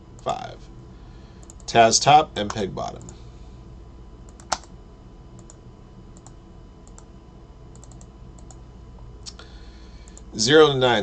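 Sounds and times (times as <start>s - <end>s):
faint electrical hum: 0.0s - 11.0s
keyboard and mouse clicks: 4.3s - 4.7s, 7.7s - 8.6s.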